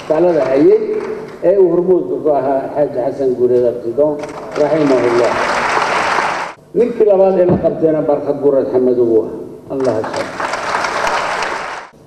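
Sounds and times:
man giving a speech: 0:00.0 - 0:05.5, 0:06.7 - 0:10.4
audience applauding: 0:04.3 - 0:06.6, 0:09.8 - 0:12.0.

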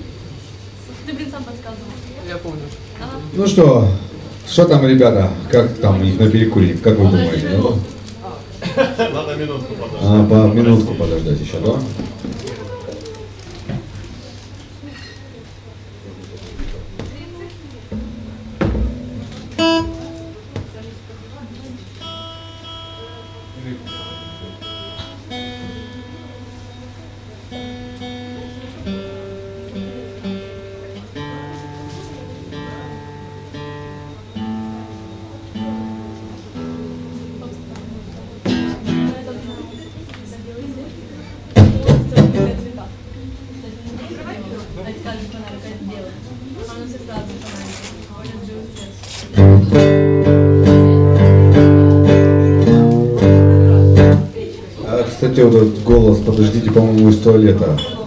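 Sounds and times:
acoustic guitar picking: 0:17.8 - 0:20.8, 0:22.0 - 0:39.6, 0:41.5 - 0:42.8, 0:49.2 - 0:54.6.

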